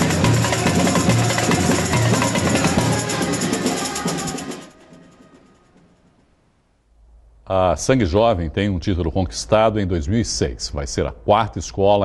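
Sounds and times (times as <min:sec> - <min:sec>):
surdo drums: 0:00.0 - 0:04.6
rattle of shakers: 0:00.0 - 0:05.9.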